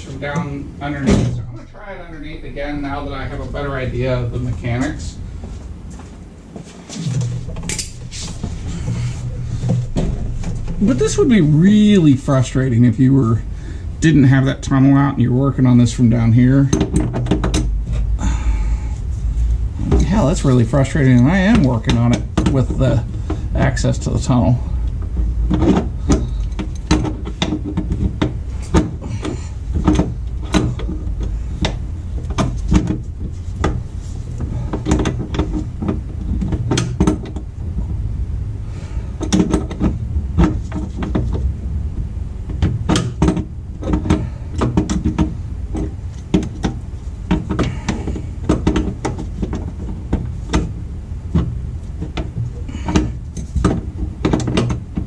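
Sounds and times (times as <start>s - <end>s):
steady low rumble: 0.0s - 55.0s.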